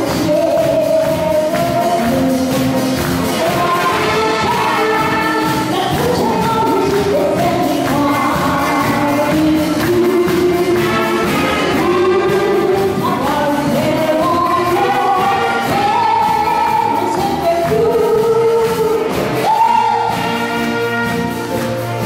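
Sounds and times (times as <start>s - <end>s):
woman singing through microphone: 0.0s - 20.4s
audience clapping along: 0.0s - 22.0s
live band saxophones and drums: 0.0s - 22.0s.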